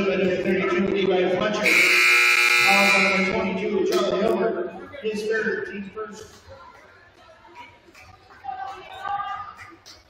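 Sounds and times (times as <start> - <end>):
crowd chatter: 0.0 - 10.0
scoreboard buzzer blast: 1.6 - 3.5.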